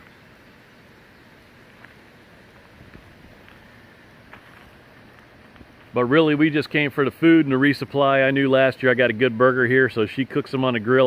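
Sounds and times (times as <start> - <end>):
faint outdoor background hiss: 0.0 - 11.0.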